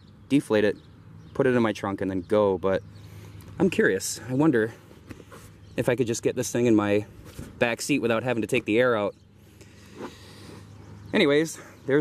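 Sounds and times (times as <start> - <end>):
faint outdoor background noise: 0.0 - 12.0.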